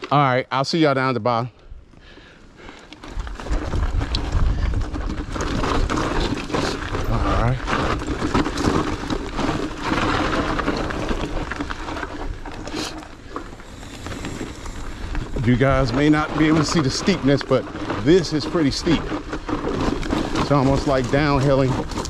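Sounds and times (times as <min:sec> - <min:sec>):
bike tyre noise on dirt trail: 0:00.0 - 0:22.0
bike rattling over bumps: 0:02.6 - 0:22.0
wind rumbling on microphone: 0:03.0 - 0:22.0.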